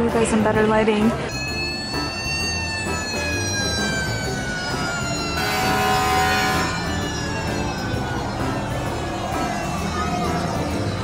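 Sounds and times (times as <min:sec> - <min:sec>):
fire truck siren wailing: 0:01.3 - 0:11.0.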